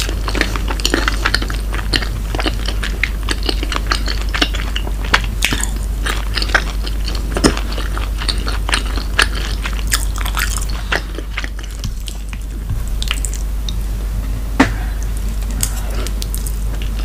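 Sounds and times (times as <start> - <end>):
wet chewing mouth sounds: 0.0 - 13.8.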